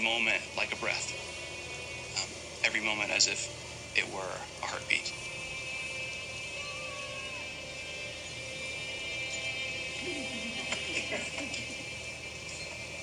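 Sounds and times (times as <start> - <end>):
soft background music from tv: 0.0 - 13.0.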